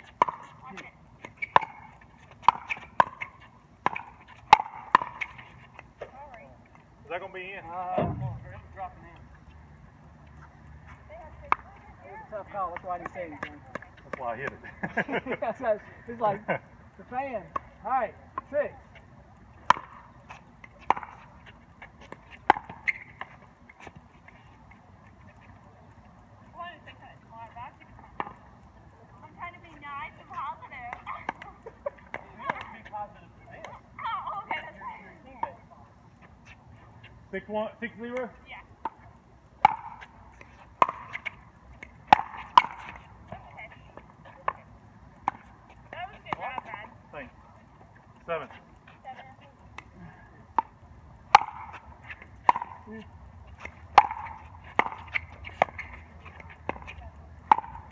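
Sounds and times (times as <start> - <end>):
paddles hitting pickleball: 0.0 - 6.2, 19.5 - 24.4, 28.1 - 28.5, 29.5 - 35.6, 38.0 - 47.0, 48.5 - 57.9
voices speaking: 10.3 - 22.3, 24.1 - 57.6.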